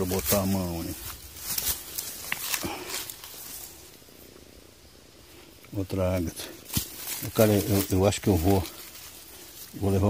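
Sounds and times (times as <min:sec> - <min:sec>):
grass rustling: 0:00.0 - 0:10.0.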